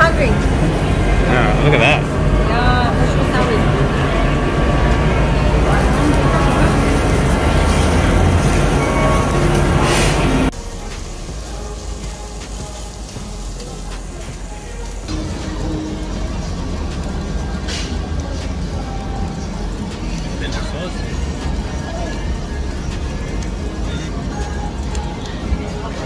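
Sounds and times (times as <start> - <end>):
background music: 0.0 - 26.0
meat sizzling on grill: 0.1 - 26.0.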